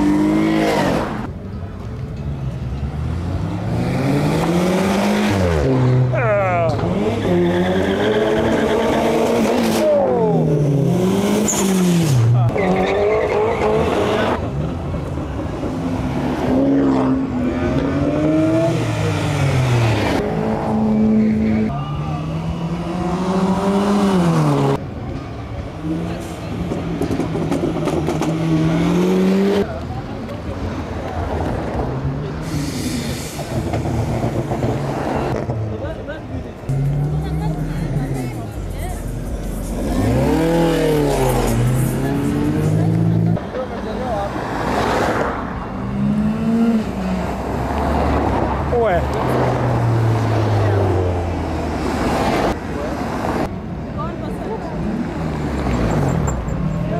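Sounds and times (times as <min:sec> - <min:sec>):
car engines revving: 0:00.0 - 0:56.9.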